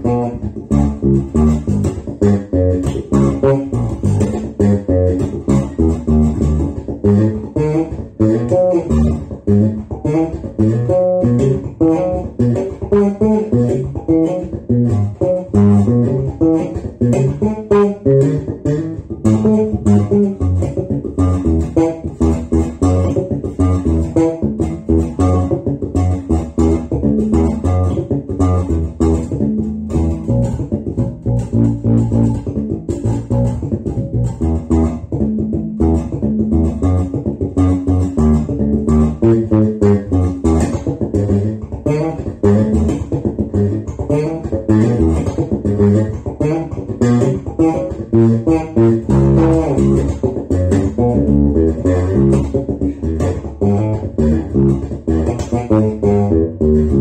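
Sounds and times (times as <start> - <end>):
electric bass guitar plucked: 0.0 - 57.0.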